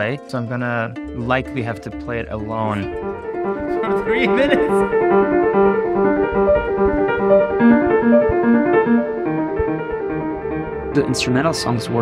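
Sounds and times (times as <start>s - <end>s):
piano broken chords: 0.0s - 12.0s
low piano bass note: 1.0s - 12.0s.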